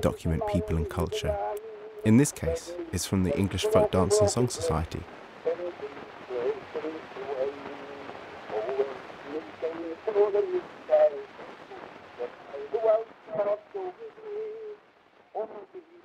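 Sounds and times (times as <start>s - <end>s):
thin voice on old recording: 0.0s - 11.2s.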